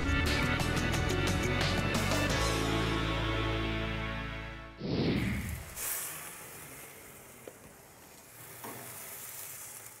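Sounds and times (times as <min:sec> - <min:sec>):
meat sizzling on a grill: 0:05.6 - 0:10.0.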